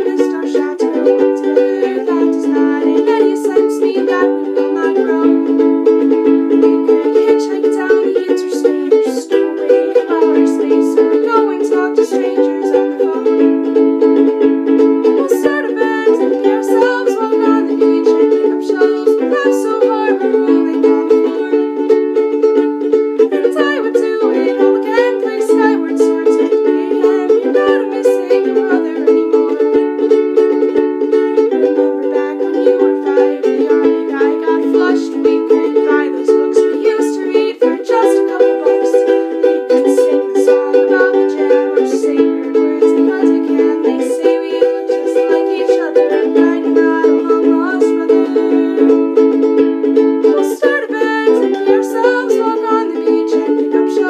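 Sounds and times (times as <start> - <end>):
ukulele strumming chords: 0.0 - 54.0.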